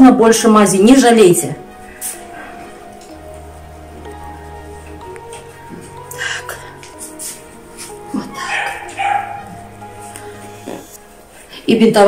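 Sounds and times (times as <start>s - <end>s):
soft background music: 0.0s - 12.0s
young dog crying in pain: 8.1s - 9.6s.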